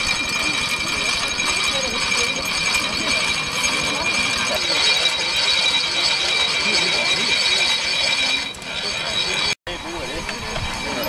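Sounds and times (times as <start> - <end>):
rope-making machine gears whining: 0.0 - 11.0.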